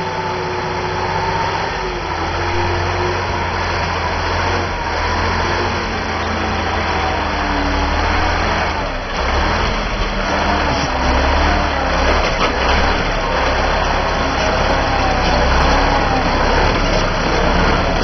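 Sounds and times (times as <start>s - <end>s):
truck engine working under load: 0.0s - 18.0s.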